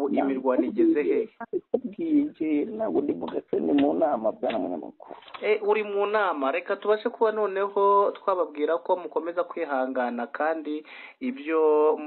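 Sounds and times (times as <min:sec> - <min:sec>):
person talking over phone: 0:00.0 - 0:05.3.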